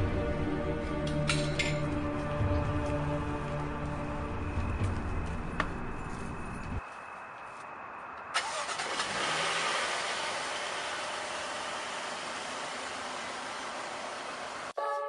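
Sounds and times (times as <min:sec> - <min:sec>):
car engine starting click: 0:08.4 - 0:09.1
car engine rushing noise: 0:08.4 - 0:14.8.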